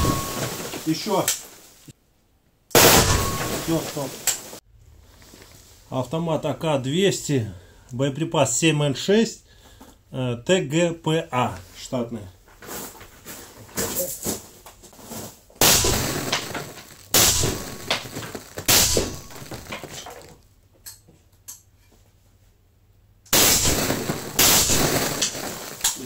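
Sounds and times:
suppressed rifle shots: 2.8s - 3.5s, 15.6s - 16.5s, 17.1s - 18.1s, 18.7s - 19.7s, 23.3s - 25.3s.

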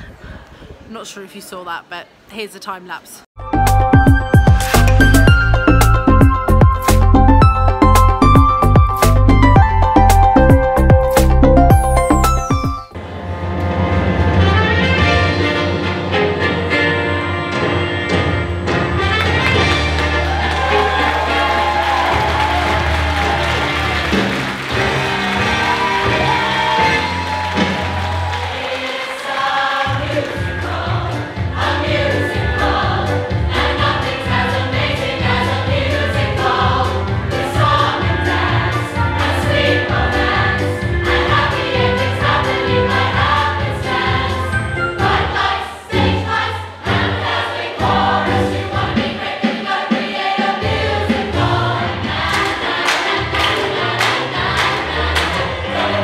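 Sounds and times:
backing track with beat and bass: 3.4s - 13.0s
choir singing show tune: 19.4s - 56.0s.

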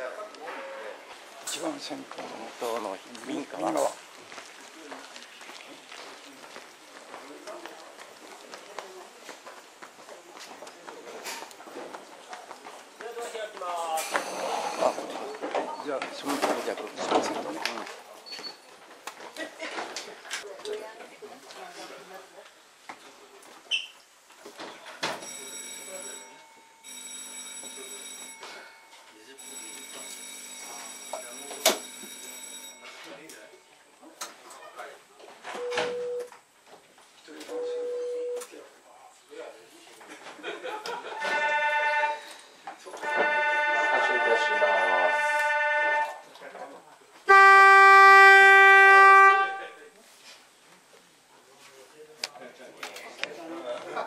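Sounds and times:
electric signal bell ringing: 25.2s - 33.6s
cable car warning horn: 41.2s - 42.4s, 43.0s - 46.3s, 47.3s - 49.8s.

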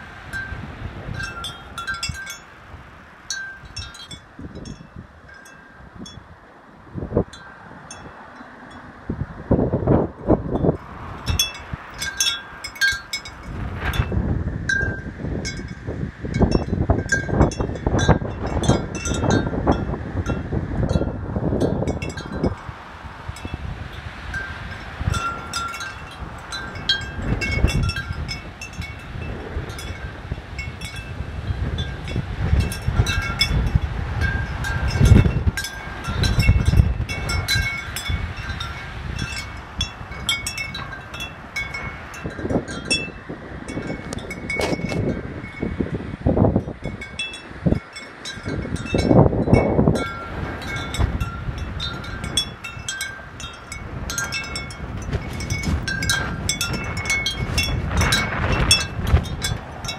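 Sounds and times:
wind chimes clinking: 0.0s - 6.3s, 7.2s - 8.9s, 10.6s - 23.7s, 24.3s - 45.9s, 46.5s - 59.9s
wind buffeting microphone: 0.0s - 59.9s.

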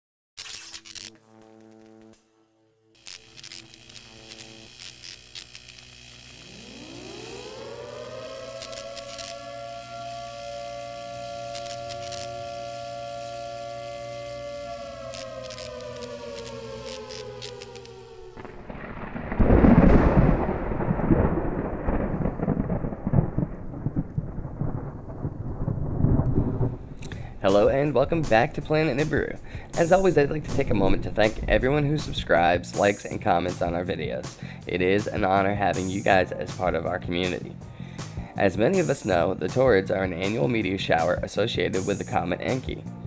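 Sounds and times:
glitchy clicks: 0.4s - 2.2s, 3.0s - 7.6s, 8.4s - 9.5s, 11.4s - 12.6s, 14.9s - 19.5s
rising siren-like synthetic tone: 6.4s - 21.7s
rain-like hiss: 8.6s - 13.8s
loud thunder rumble: 18.4s - 32.4s.

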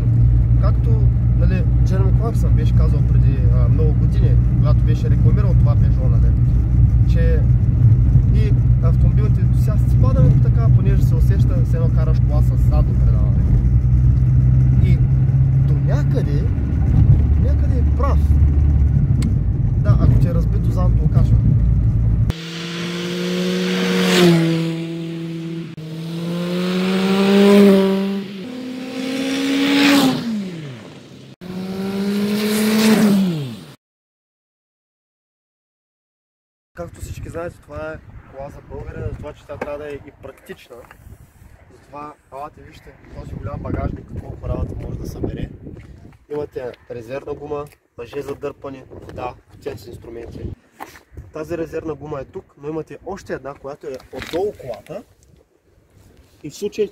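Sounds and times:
car engine and road noise: 0.0s - 33.8s.

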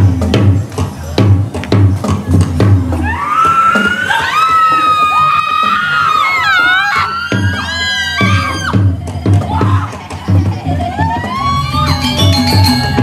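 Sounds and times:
drumming: 0.0s - 13.0s
high-pitched voices shrieking: 3.0s - 13.0s.

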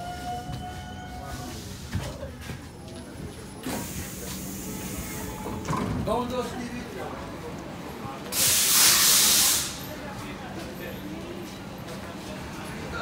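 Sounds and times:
metro car whine: 0.0s - 13.0s
sliding doors hiss: 8.3s - 9.8s.

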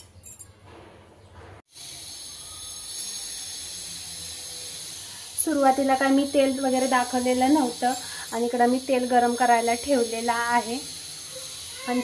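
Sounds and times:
oil heating with a hiss: 1.7s - 12.0s.

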